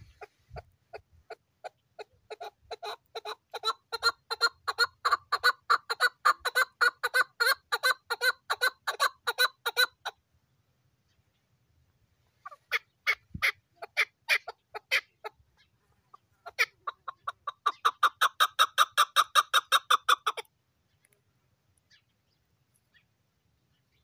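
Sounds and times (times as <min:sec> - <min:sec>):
partridge chuck calls: 0:00.0 - 0:10.2, 0:12.3 - 0:21.2.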